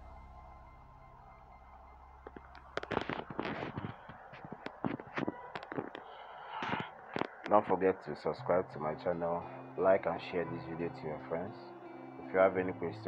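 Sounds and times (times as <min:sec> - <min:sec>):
adhesive tape crackling: 0:01.8 - 0:07.8.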